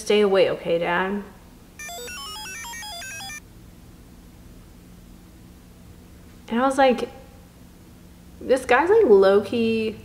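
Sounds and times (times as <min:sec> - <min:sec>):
electronic beeping jingle: 0:01.8 - 0:03.4.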